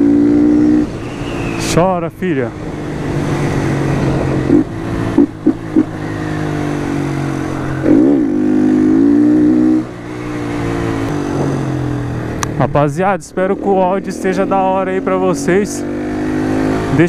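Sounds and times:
motorcycle engine revving: 0.0s - 17.0s.

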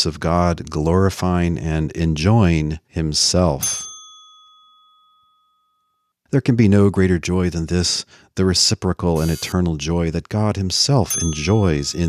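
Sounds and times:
bell-like ding: 3.6s - 6.1s, 11.1s - 12.0s.

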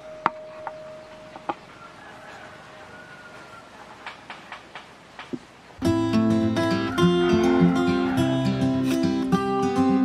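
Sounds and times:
wood-on-wood knocks: 4.0s - 5.5s.

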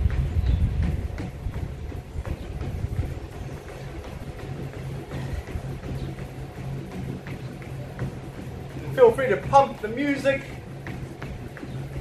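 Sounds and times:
footfall knocks on treadmill: 0.0s - 12.0s
treadmill belt rumbling: 0.0s - 12.0s.

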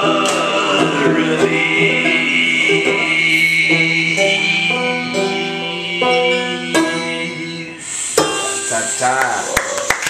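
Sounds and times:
people clapping: 9.1s - 10.0s.

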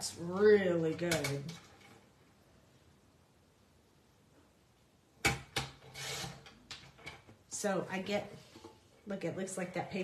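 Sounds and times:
blade scraping along rail: 5.9s - 6.5s.

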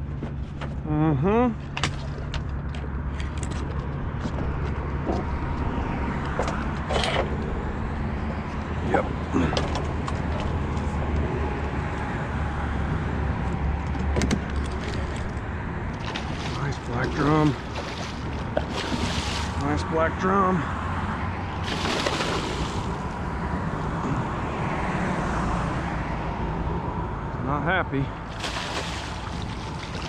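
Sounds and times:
fish splashing in water: 14.6s - 19.6s, 21.6s - 23.2s, 28.2s - 30.0s.

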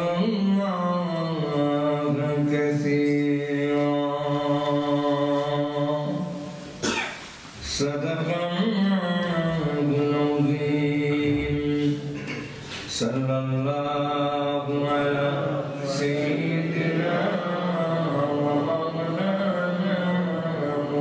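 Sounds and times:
man chanting recitation: 0.0s - 6.8s, 7.6s - 21.0s.

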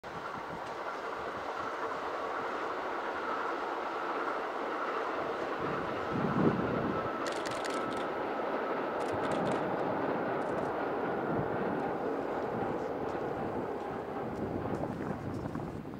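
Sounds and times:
electric train passing: 0.0s - 15.9s.

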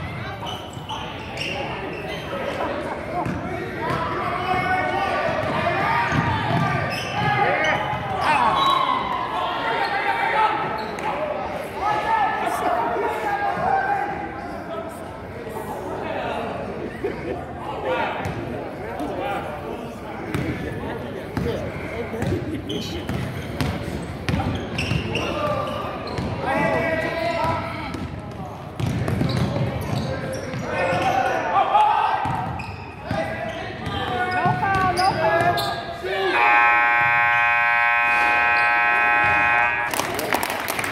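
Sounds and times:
voices in large hall: 0.0s - 40.9s
basketball bouncing on gym floor: 5.3s - 8.1s, 28.8s - 30.6s
scoreboard horn: 36.3s - 40.1s.

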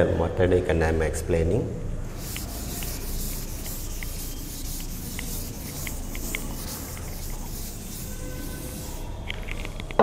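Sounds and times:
duster scrubbing a chalkboard: 2.1s - 9.7s.

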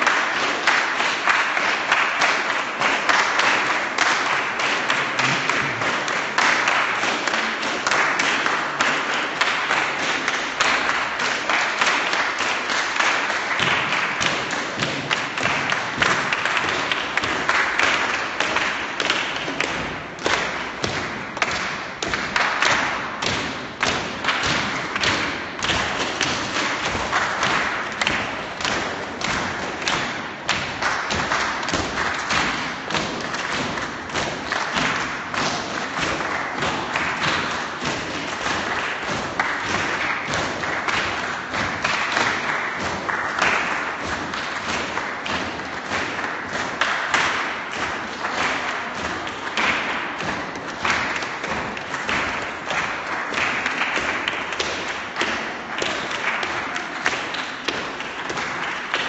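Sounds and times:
crowd clapping in rhythm: 0.0s - 59.0s.

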